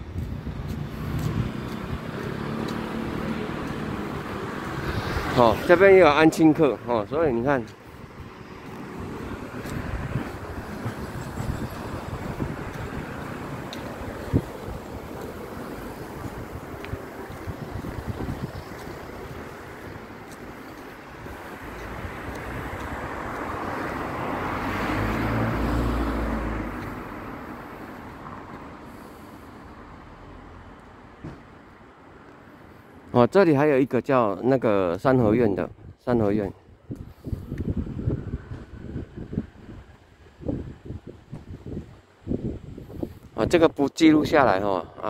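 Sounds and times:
motor vehicle passing: 0.0s - 31.4s
street traffic noise: 0.0s - 45.0s.

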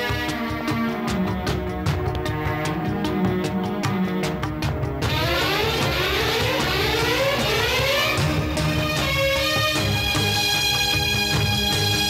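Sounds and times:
steady low beat: 0.0s - 12.0s.

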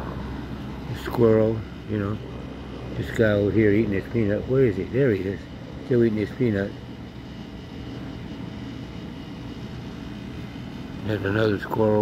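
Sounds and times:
low mechanical drone: 0.0s - 12.0s.

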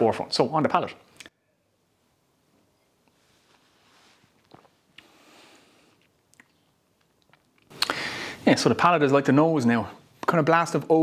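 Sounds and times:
soft breaths: 2.7s - 6.1s, 7.7s - 8.5s
tongue and lip clicks: 6.0s - 8.0s.

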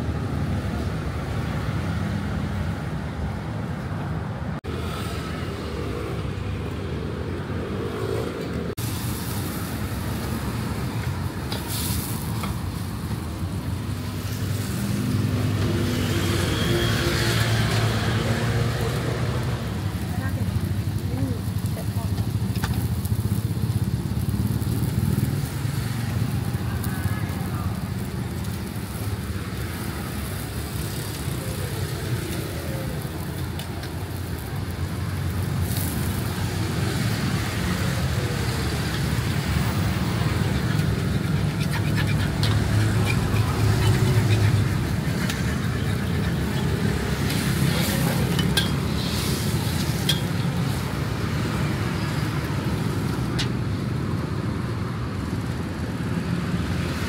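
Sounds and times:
road traffic rumble: 0.0s - 57.0s.

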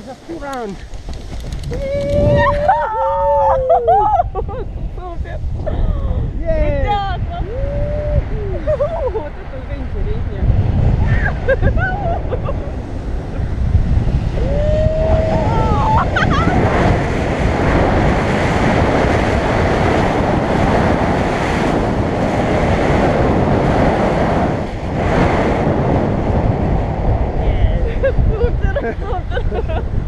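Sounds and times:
loud wind rushing over microphone: 0.0s - 30.0s
person whooping: 1.7s - 4.3s, 7.4s - 8.6s, 14.4s - 16.5s.

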